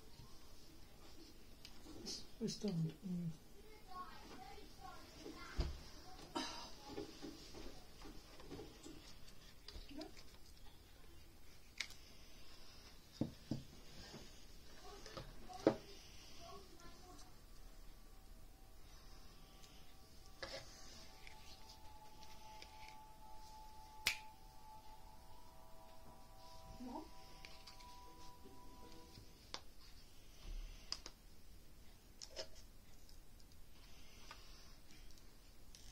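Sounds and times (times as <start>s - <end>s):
faint steady hum: 0.0s - 35.9s.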